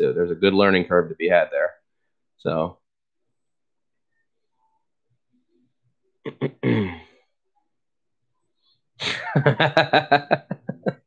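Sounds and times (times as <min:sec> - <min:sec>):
man laughing: 0:06.3 - 0:06.9, 0:09.0 - 0:11.0.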